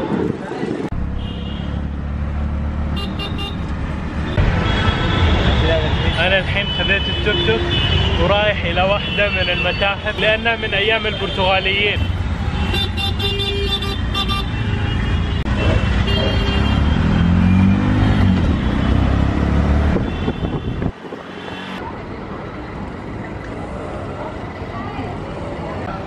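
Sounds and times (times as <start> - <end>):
street noise: 0.0 - 26.0
horns honking: 2.9 - 21.8
auto-rickshaw engine rumble: 11.7 - 26.0.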